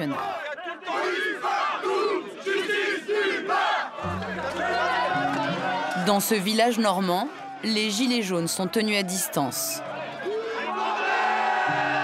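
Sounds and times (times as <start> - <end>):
crowd of protesters shouting: 0.0 - 12.0.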